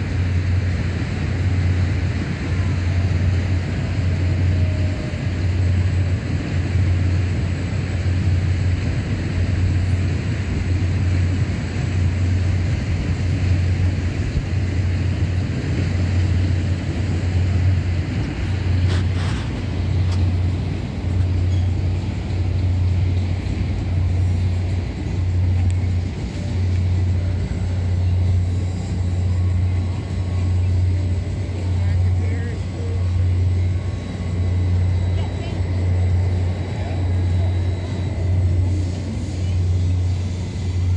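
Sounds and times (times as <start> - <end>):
low machine hum of swing ride: 0.0 - 40.9
faint voices: 14.5 - 40.9.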